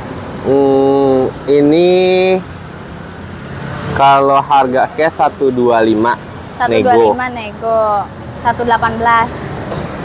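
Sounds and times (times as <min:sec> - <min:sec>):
road traffic noise: 0:00.0 - 0:10.0
person speaking: 0:04.0 - 0:09.7.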